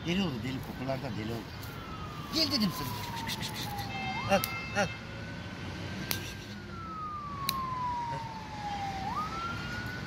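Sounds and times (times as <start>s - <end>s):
siren wailing: 0.8s - 5.0s, 6.2s - 10.0s.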